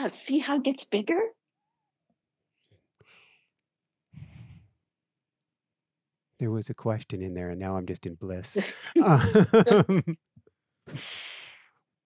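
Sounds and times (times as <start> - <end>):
person breathing in: 3.0 - 3.5, 4.2 - 4.7
person sighing: 8.6 - 10.2.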